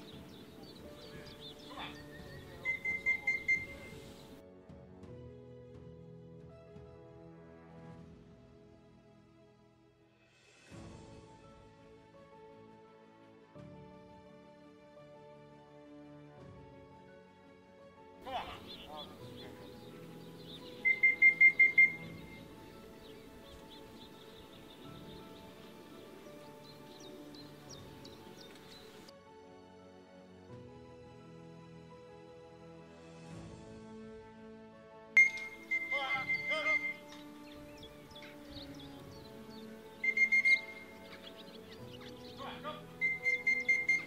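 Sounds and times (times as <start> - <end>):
small birds chirping: 0.0 - 4.4, 18.3 - 29.1, 35.2 - 44.0
background music: 0.0 - 44.0.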